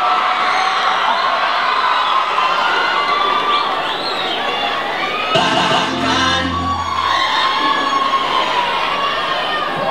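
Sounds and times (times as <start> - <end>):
audience cheering and shouting: 5.0 - 9.8
band sustained chord: 5.4 - 7.6.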